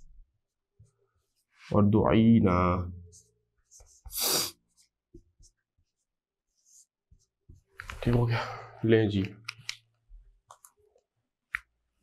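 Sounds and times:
marker scratching on whiteboard: 3.0s - 7.7s.

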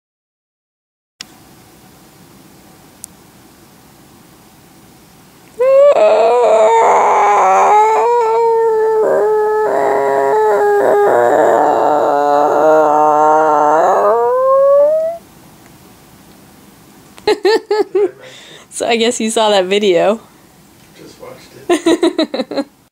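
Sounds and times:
woman's howling vocal noise: 5.6s - 15.2s.

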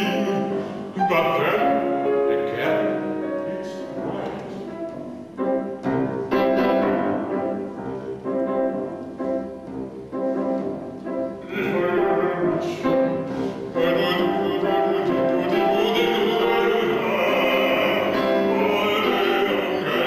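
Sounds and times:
grand piano playing chords: 0.0s - 20.0s.

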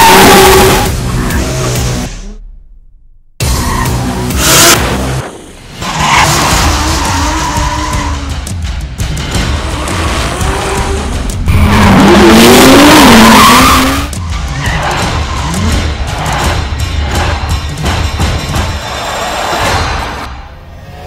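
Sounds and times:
car engine revving: 0.0s - 2.4s, 3.9s - 17.5s
tyres skidding and squealing: 0.0s - 2.4s, 3.4s - 8.5s, 9.2s - 21.0s
background music with steady beat: 5.8s - 20.4s.

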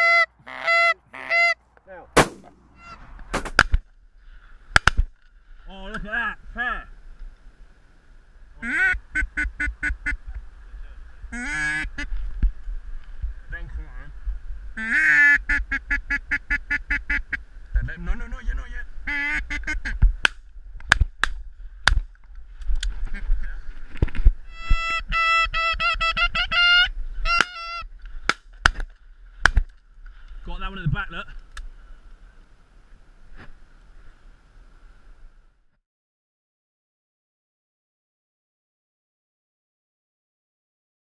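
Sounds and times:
ducks quacking: 0.0s - 1.6s, 8.6s - 10.3s, 11.3s - 12.1s, 14.8s - 17.4s, 19.0s - 20.0s
geese honking: 0.0s - 1.6s, 2.7s - 3.1s, 8.6s - 10.3s, 11.3s - 12.1s, 14.8s - 17.4s, 19.0s - 20.0s, 24.5s - 27.9s.

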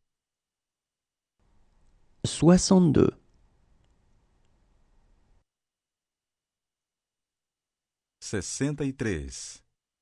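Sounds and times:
faint low hiss: 1.4s - 5.5s.

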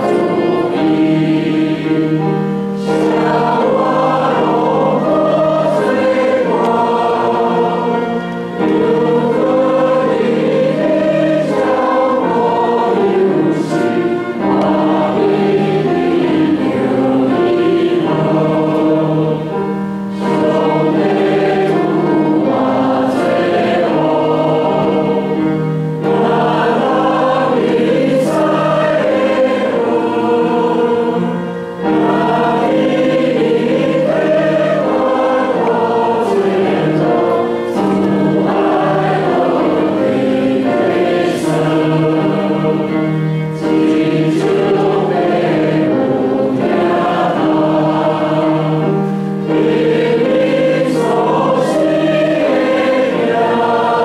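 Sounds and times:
congregation singing a hymn: 0.0s - 54.0s.

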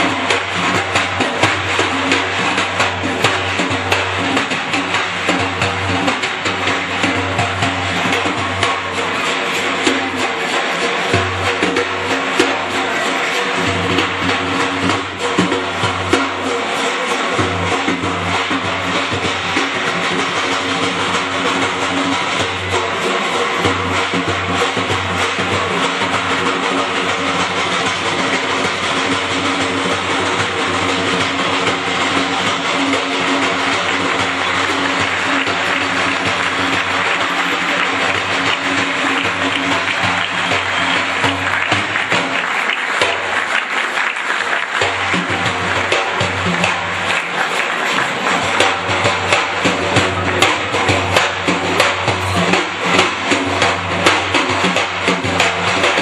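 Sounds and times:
frame drum rolls: 18.3s - 55.9s.

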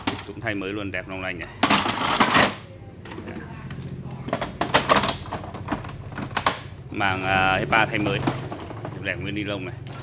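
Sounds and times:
plastic clicks and knocks: 4.3s - 6.8s.

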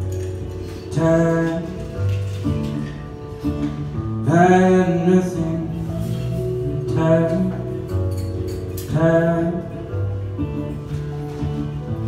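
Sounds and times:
acoustic guitar: 0.0s - 12.0s
keyboard chords: 0.0s - 12.0s.

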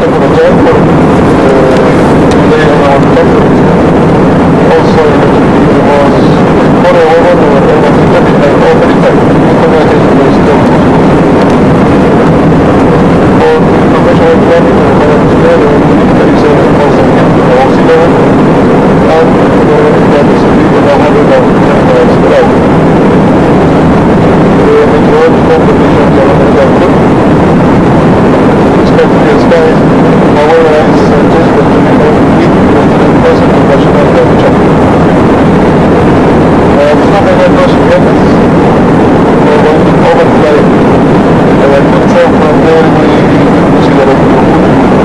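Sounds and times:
small aircraft engine drone: 0.0s - 45.0s.

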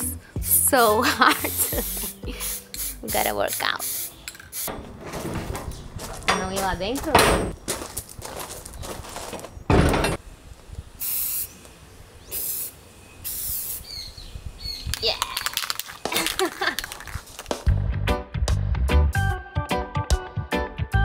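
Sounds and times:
spray paint can hissing: 0.0s - 4.7s, 11.0s - 17.6s.

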